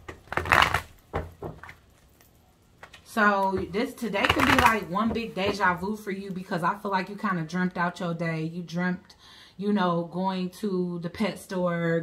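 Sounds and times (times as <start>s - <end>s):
cards being shuffled: 0.2s - 1.0s, 4.2s - 4.8s.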